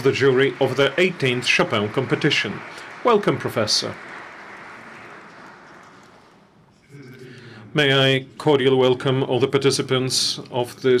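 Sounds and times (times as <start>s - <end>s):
audience applause: 0.0s - 6.5s.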